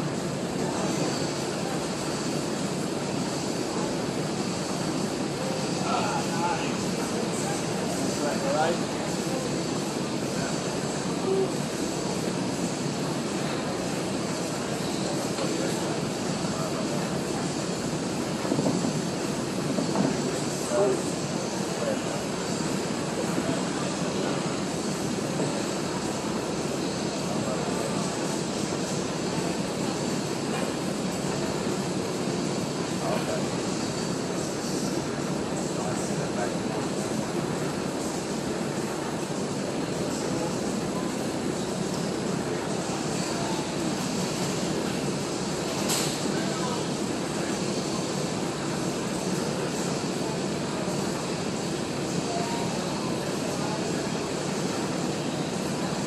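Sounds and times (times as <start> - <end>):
steady rushing machinery noise: 0.0 - 56.0.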